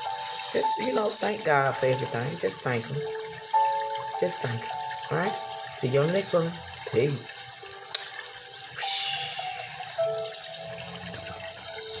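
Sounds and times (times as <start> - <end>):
rush like running water: 0.0 - 12.0
soft music of held notes: 0.0 - 12.0.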